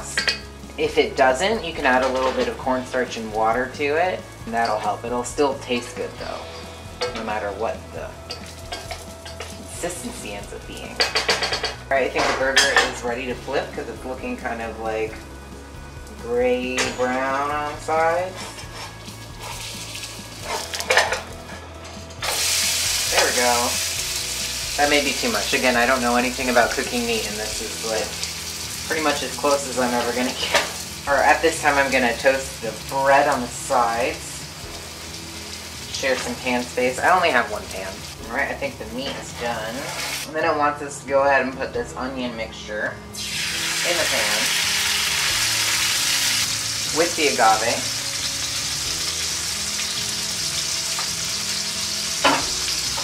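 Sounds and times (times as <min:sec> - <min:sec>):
metal spatula scraping a pan: 0:16.9 - 0:25.3, 0:38.9 - 0:40.3
patty sizzling in oil: 0:17.2 - 0:21.6, 0:22.2 - 0:40.3, 0:43.1 - 0:53.0.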